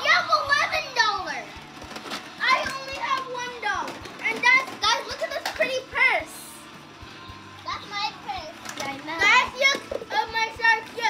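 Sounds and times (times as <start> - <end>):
toys clattering in a toy box: 0.5 - 6.0, 8.5 - 11.0.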